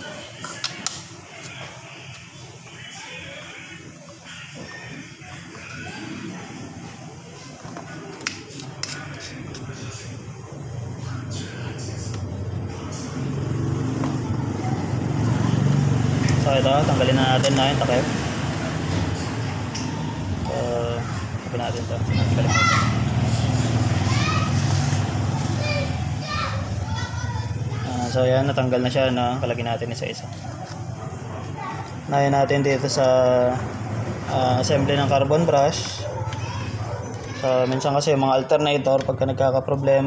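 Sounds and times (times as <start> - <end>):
children calling: 2.5 - 10.0, 11.4 - 28.5, 30.6 - 38.6.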